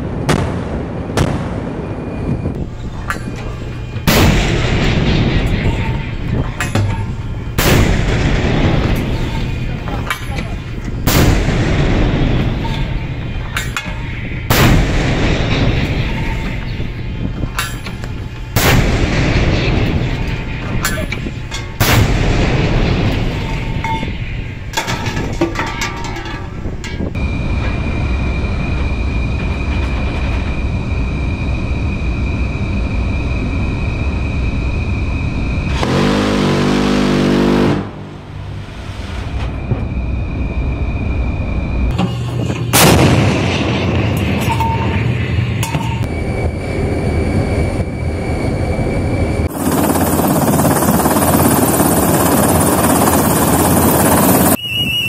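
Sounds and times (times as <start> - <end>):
steady noise with high tone: 2.0 - 36.2, 37.8 - 54.6.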